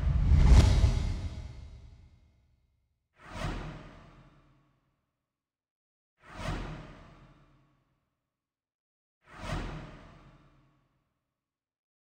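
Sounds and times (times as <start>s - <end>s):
whoosh sound effect: 0.0s - 1.8s.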